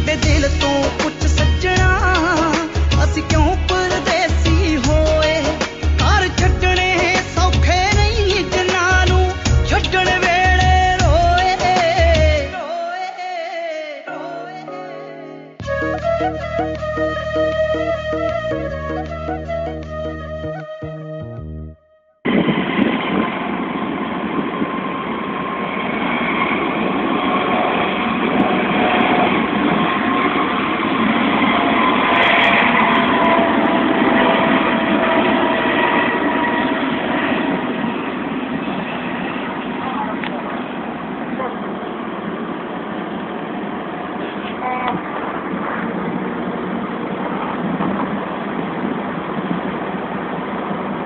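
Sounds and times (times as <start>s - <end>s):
helicopter engine and rotor: 22.2s - 51.0s
steady machinery noise: 22.2s - 51.0s.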